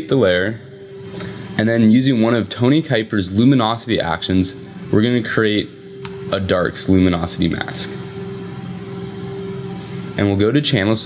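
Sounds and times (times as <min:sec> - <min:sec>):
low hum of held tones: 0:00.0 - 0:11.0.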